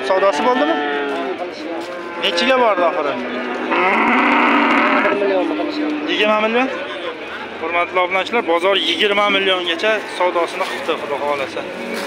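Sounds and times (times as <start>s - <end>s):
cow mooing: 0.1s - 6.5s.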